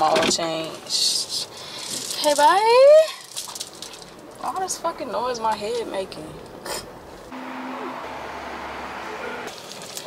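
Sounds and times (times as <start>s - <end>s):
machine humming and hissing: 7.3s - 9.5s.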